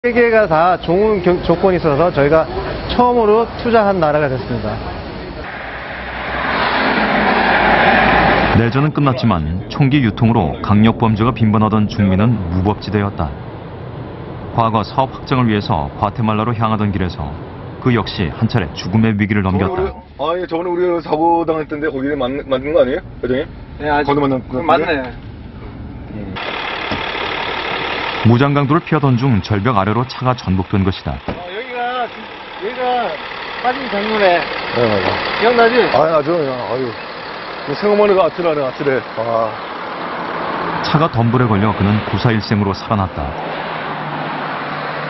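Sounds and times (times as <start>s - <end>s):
truck passing on highway: 0.2s - 9.2s, 12.2s - 16.0s, 25.3s - 45.0s
car cabin road noise: 0.2s - 45.0s.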